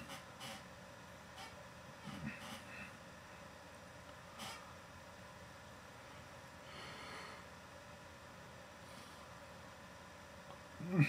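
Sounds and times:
microphone hiss: 0.0 - 11.0
faint voice hum: 10.8 - 11.0.

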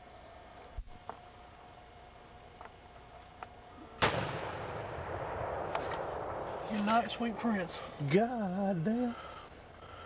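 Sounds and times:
gunshot with rolling echo: 4.0 - 7.9.

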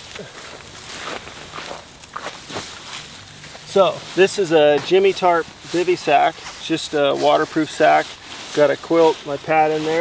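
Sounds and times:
nylon fabric rustling: 0.0 - 10.0
shuffling on dry grass: 0.0 - 10.0.

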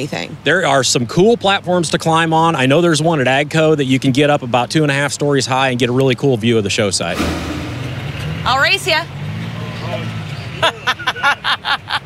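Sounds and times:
woman's voice: 0.0 - 0.4, 8.5 - 9.1.

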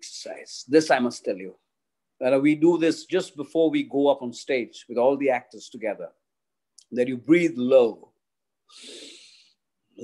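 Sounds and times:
man breathing in deeply: 8.7 - 9.6.

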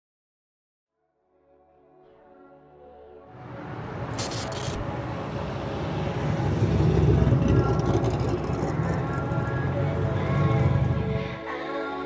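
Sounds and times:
short high hiss: 4.1 - 4.8
sports car driving past: 4.8 - 11.4.

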